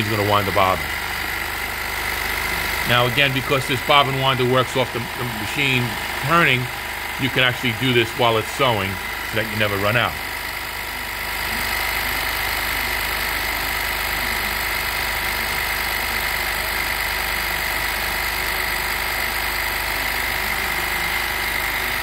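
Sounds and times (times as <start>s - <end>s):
sewing machine running with whine: 0.0s - 22.0s.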